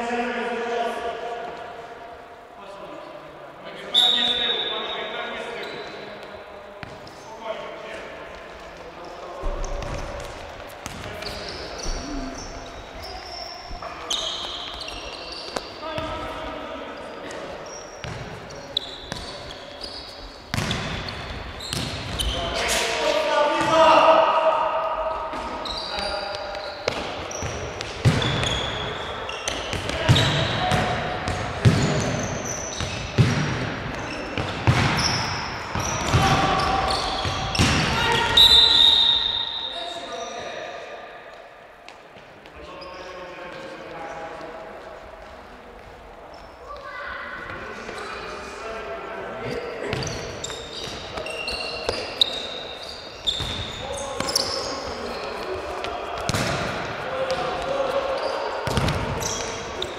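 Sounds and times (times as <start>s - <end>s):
trainers squeaking on court: 3.8s - 7.4s, 8.9s - 24.1s, 25.2s - 40.6s, 42.6s - 44.2s, 49.3s - 59.9s.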